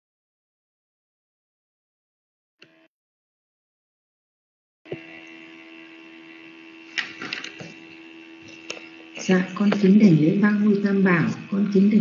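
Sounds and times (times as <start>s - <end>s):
constant tones: 4.9s - 12.0s
electrical hum and hiss: 4.9s - 12.0s.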